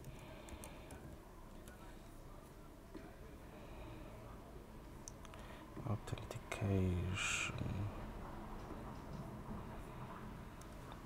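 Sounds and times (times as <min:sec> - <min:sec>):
computer mouse clicks: 0:00.0 - 0:01.8
low room hiss: 0:00.0 - 0:11.0.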